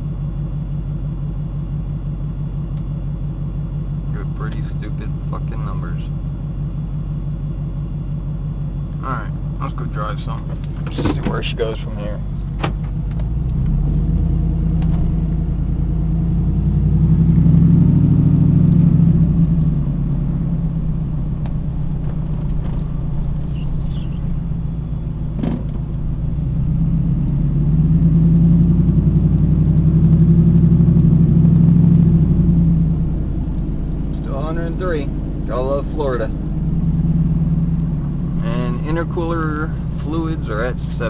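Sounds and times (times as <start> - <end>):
truck engine while driving: 0.0 - 41.0.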